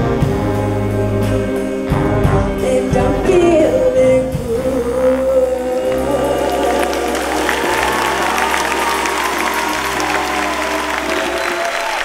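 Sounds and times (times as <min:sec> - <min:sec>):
jazz big band holding a chord: 0:00.0 - 0:12.0
audience applause: 0:05.6 - 0:12.0.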